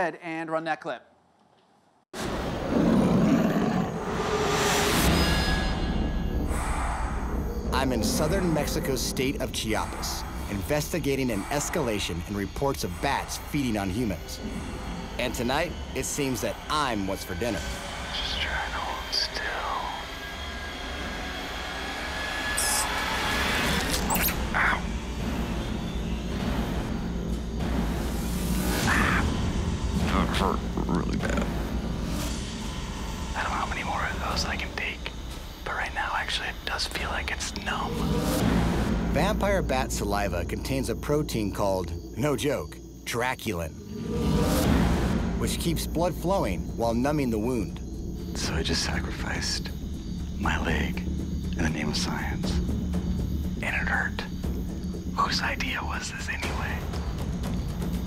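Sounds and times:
low droning suspense score: 0:02.2 - 0:58.0
loud roaring rumble: 0:06.2 - 0:33.9.

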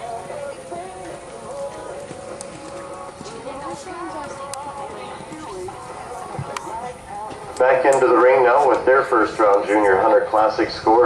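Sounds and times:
music: 0:00.0 - 0:11.0
voices: 0:00.0 - 0:11.0.

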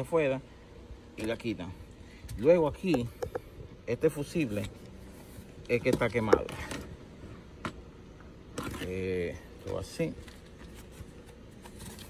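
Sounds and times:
man speaking: 0:08.7 - 0:10.2.

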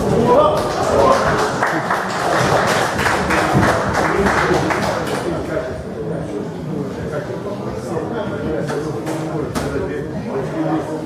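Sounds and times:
audience applauding: 0:00.4 - 0:05.4.

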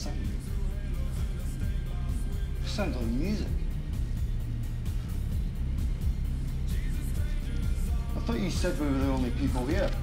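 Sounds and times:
muffled music bass rumble: 0:00.0 - 0:10.0.

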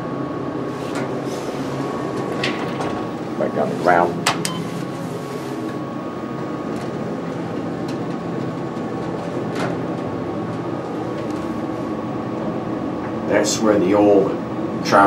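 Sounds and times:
elevator doors closing: 0:00.0 - 0:15.0
machine hum with high whine: 0:00.0 - 0:15.0.

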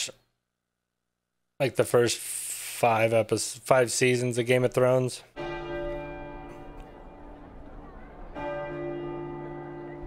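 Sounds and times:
large bells ringing: 0:05.4 - 0:10.0.

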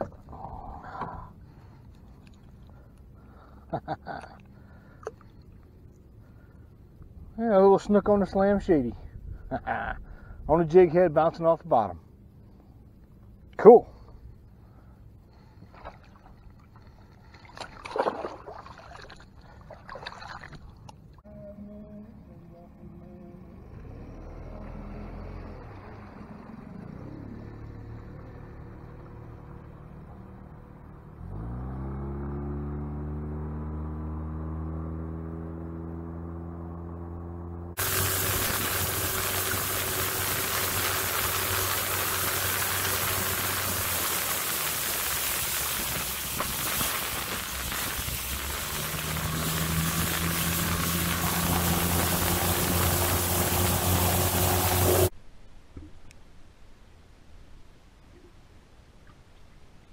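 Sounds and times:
outboard motor revving: 0:23.5 - 0:55.1.

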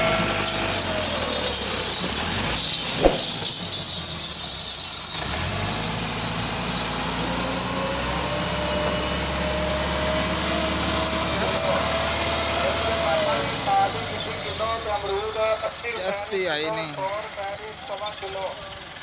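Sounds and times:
tractor diesel engine under load: 0:00.0 - 0:19.0.

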